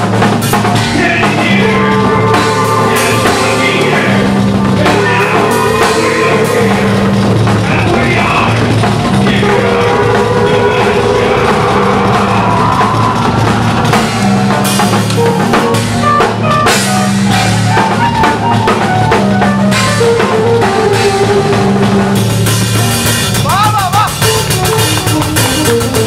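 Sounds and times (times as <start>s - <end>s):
death metal band playing live: 0.0s - 26.0s
fast drum kit: 0.0s - 26.0s.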